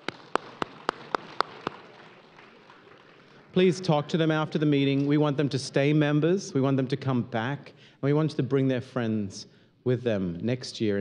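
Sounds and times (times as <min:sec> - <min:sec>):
sharp hand claps: 0:00.0 - 0:03.6.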